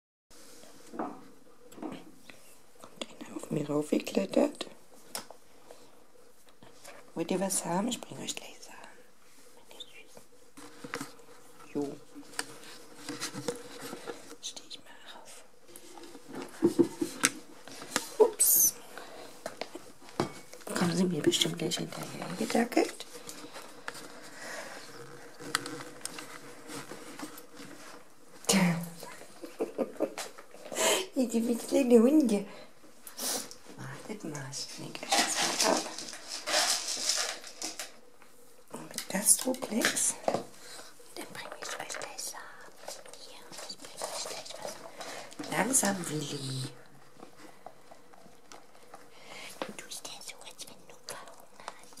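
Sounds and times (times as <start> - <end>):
faint steady hum: 0.4 - 52.0.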